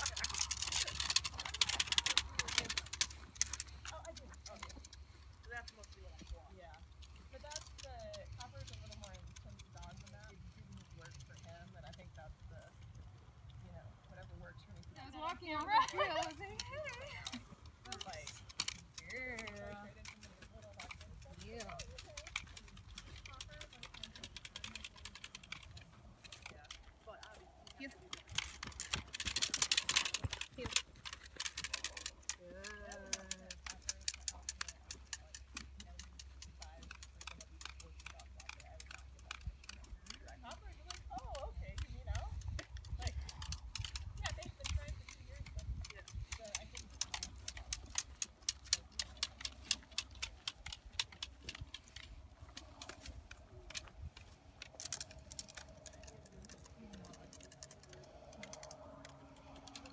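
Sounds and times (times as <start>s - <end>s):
footsteps through dry grass: 42.3s - 59.7s.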